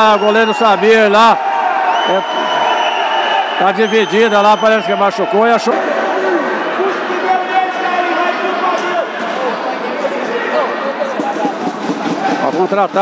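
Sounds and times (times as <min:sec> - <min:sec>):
crowd hubbub in a gym hall: 0:00.0 - 0:13.0.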